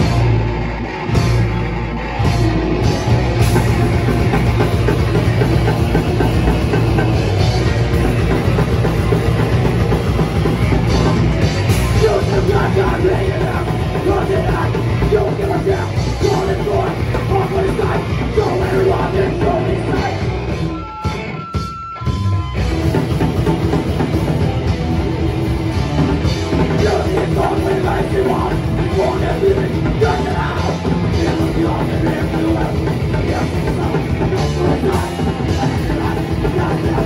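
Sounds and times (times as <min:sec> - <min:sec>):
bass guitar riff: 0:00.0 - 0:37.0
distorted electric guitars: 0:00.0 - 0:37.0
drums: 0:00.0 - 0:37.0.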